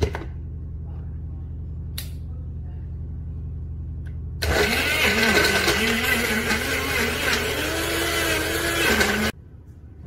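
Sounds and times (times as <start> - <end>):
blender motor whining: 4.4 - 9.3.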